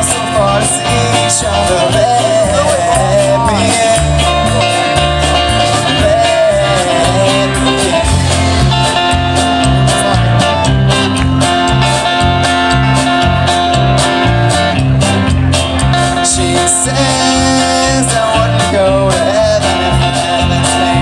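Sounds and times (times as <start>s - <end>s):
drum kit beat: 0.0s - 21.0s
live band through speakers: 0.0s - 21.0s.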